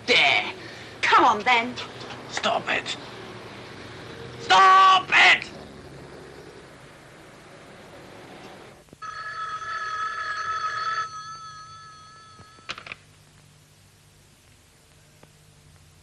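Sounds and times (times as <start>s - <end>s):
desk telephone ringing: 9.0s - 13.0s.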